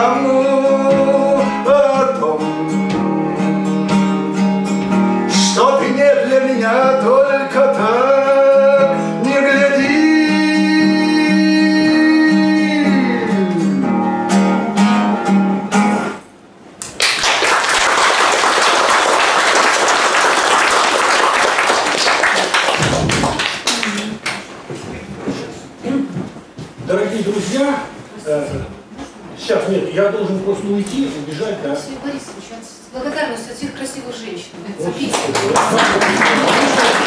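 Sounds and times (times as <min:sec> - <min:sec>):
man singing: 0:00.0 - 0:14.1
acoustic guitar: 0:00.0 - 0:16.6, 0:20.7 - 0:37.0
audience applauding: 0:16.8 - 0:24.5, 0:35.0 - 0:37.0.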